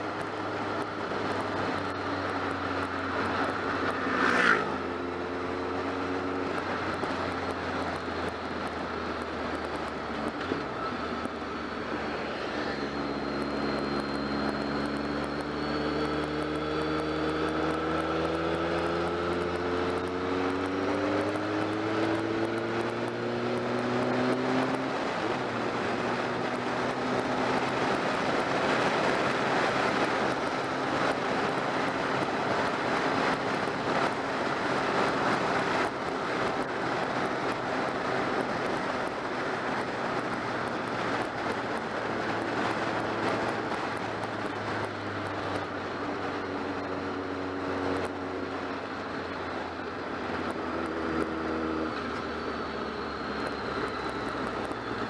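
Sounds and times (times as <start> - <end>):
motorcycle engine: 0.0 - 55.0.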